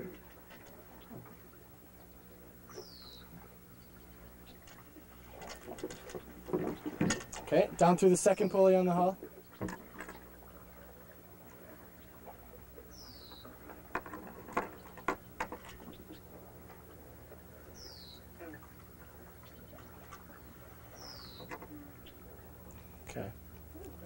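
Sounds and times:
rigging hardware clicks and knocks: 0:05.4 - 0:07.5.

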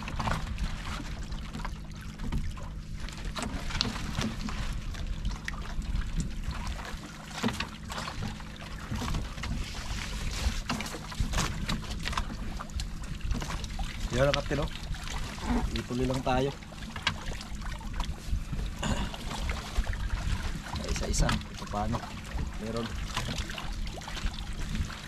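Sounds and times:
boat engine hum: 0:00.0 - 0:25.0
water splashing against hull: 0:00.0 - 0:25.0.

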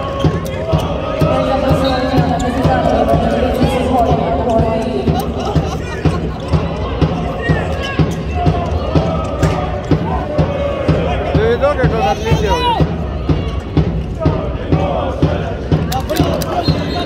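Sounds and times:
sports fans chanting: 0:00.0 - 0:17.0
low drumbeat: 0:00.7 - 0:15.9.

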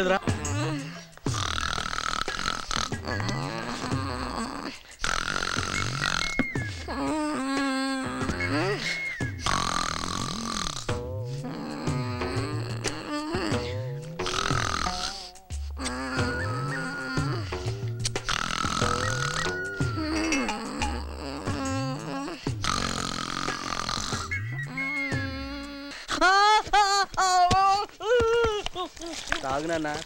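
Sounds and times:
grunting burp-like noises: 0:00.0 - 0:25.5
film background music: 0:00.0 - 0:25.7
falling whistle: 0:06.0 - 0:06.9, 0:08.3 - 0:09.6, 0:15.9 - 0:18.1, 0:18.8 - 0:20.5, 0:24.1 - 0:25.5
comic buzzing sound: 0:08.2 - 0:25.8.

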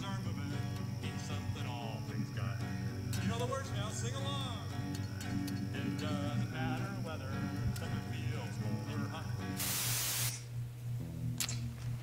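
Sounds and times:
acoustic guitar: 0:00.0 - 0:09.6
loud sharp hiss: 0:09.6 - 0:10.4.

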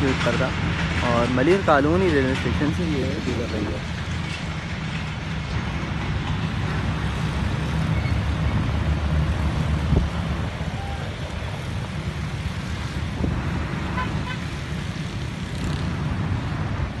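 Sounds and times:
traffic rumble: 0:00.0 - 0:17.0.

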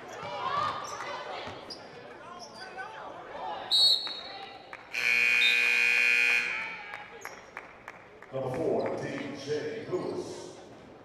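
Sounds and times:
scoreboard horn buzz: 0:04.9 - 0:06.8.

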